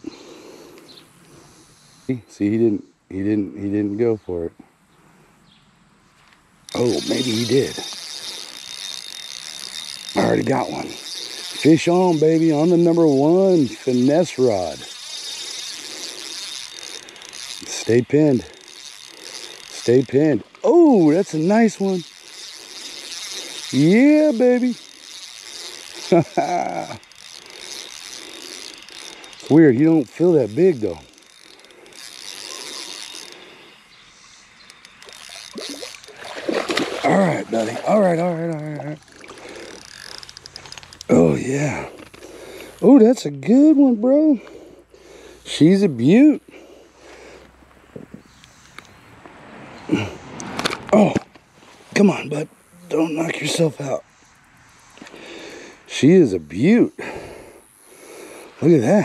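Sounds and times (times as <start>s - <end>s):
fishing reel gears whirring: 0.0s - 4.0s, 6.6s - 51.0s, 52.0s - 59.0s
fish splashing: 34.8s - 40.6s.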